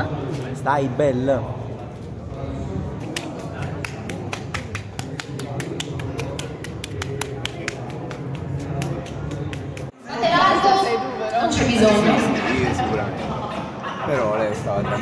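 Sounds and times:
murmur of large hall: 0:00.0 - 0:15.0.

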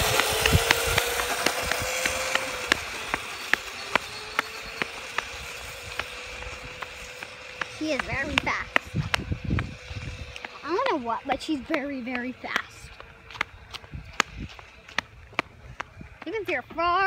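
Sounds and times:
electric scooter motor whining: 0:00.0 - 0:17.0.

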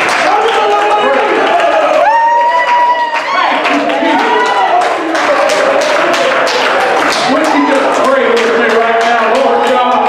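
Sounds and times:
congregation clapping in rhythm: 0:00.0 - 0:10.0
man preaching into a microphone: 0:00.2 - 0:01.8, 0:07.2 - 0:10.0.

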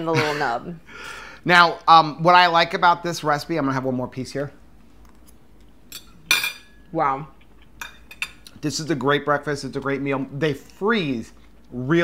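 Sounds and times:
metal fork clinking on plate: 0:05.9 - 0:06.8.

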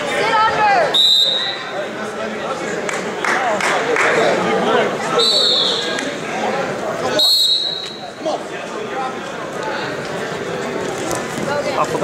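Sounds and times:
crowd chatter: 0:00.0 - 0:12.0
referee's whistle blasts: 0:00.9 - 0:01.8, 0:05.2 - 0:06.0, 0:07.1 - 0:08.1.

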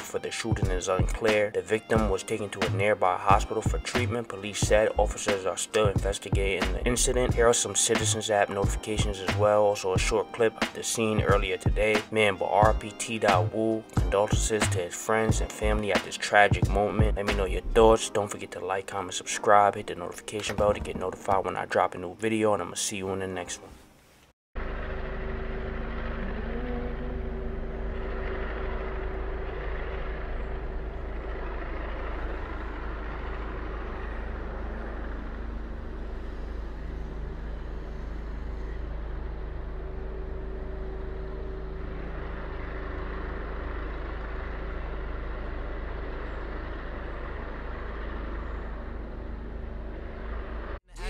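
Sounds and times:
vehicle engine running nearby: 0:00.0 - 0:23.6, 0:24.6 - 0:50.8
street traffic noise: 0:24.6 - 0:50.8.

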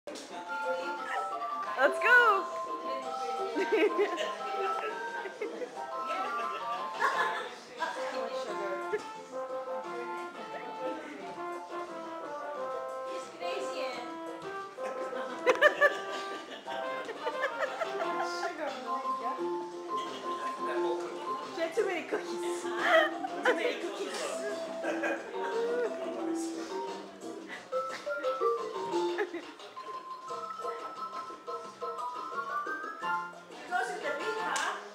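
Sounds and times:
electronic keyboard melody: 0:00.1 - 0:33.6.

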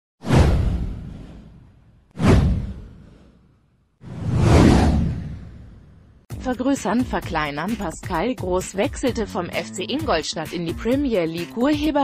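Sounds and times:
whoosh with deep low boom: 0:00.2 - 0:06.3.

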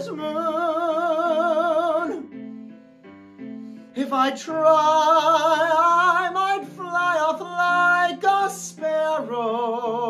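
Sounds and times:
man singing with vibrato: 0:00.0 - 0:02.3, 0:04.0 - 0:10.0
low musical accompaniment: 0:00.0 - 0:10.0.

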